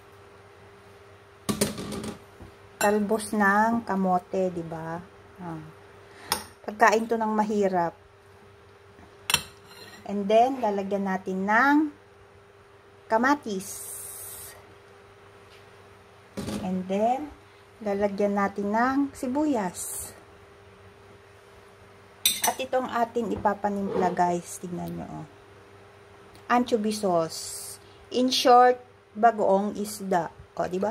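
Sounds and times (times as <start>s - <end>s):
faint steady hum: 0.0s - 30.9s.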